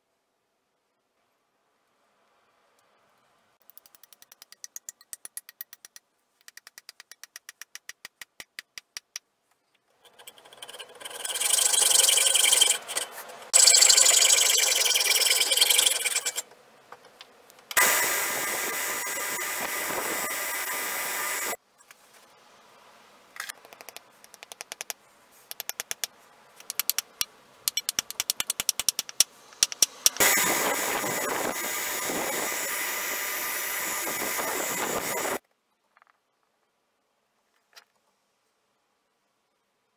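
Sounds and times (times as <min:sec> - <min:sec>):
belt sander running: 0:17.8 - 0:21.6, 0:30.2 - 0:35.4
rapid even clicking: 0:23.6 - 0:30.2.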